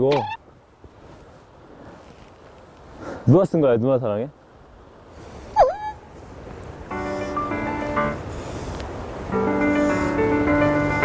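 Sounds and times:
faint background noise: 0:00.0 - 0:11.0
soft background music: 0:06.9 - 0:11.0.

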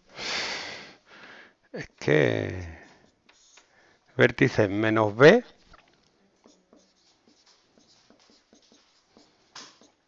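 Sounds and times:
marker pen on whiteboard: 0:01.9 - 0:10.0.

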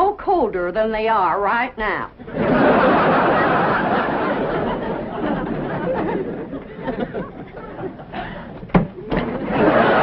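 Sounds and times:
audience laughter: 0:02.2 - 0:10.0.

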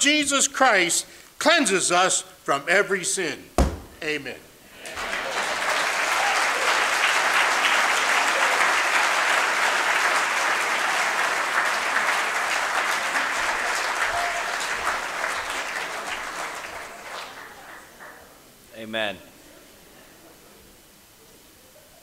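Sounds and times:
audience applauding: 0:04.7 - 0:18.4.

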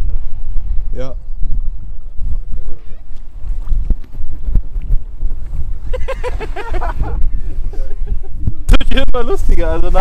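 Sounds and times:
strong wind buffeting microphone: 0:00.0 - 0:10.0.

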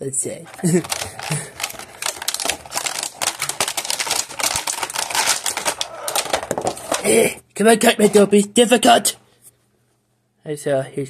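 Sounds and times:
plastic packaging crackling: 0:00.5 - 0:08.4.

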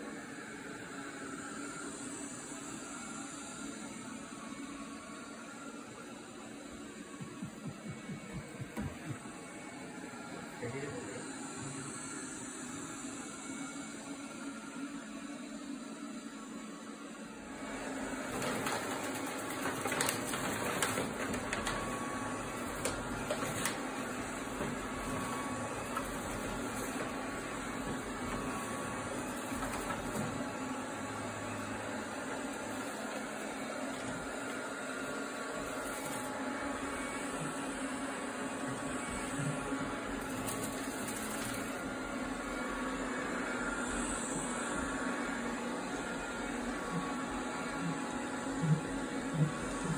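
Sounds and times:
robot vacuum humming: 0:00.0 - 0:49.9.

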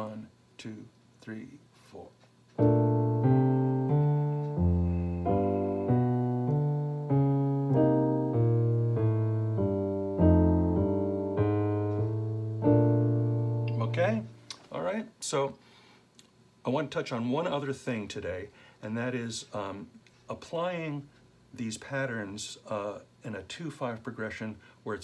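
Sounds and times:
digital piano jazz walking bass: 0:02.5 - 0:14.4.

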